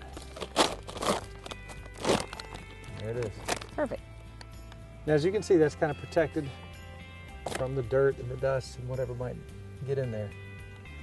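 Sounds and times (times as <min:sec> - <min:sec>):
plastic bag rustling and crinkling: 0:00.0 - 0:04.0
faint background music: 0:00.0 - 0:11.0.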